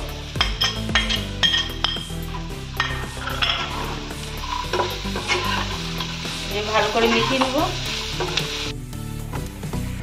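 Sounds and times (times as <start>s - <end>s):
vegetables sizzling in a pan: 0.0s - 9.4s
steel spatula scraping a pan: 0.6s - 8.6s.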